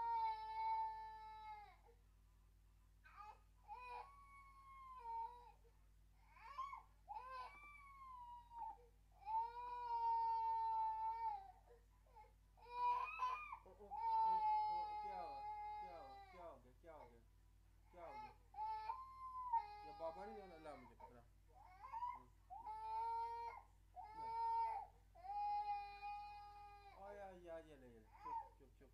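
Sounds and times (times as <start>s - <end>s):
baby crying: 0.0s - 1.9s, 3.1s - 5.6s, 6.2s - 16.4s, 18.1s - 20.9s, 21.6s - 27.0s
low electrical hum: 0.0s - 28.9s.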